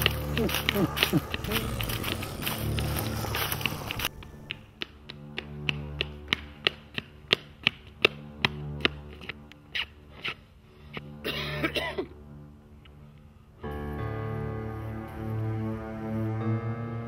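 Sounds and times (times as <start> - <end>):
running footsteps on asphalt: 0.0 - 11.2
low film score music: 0.0 - 17.0.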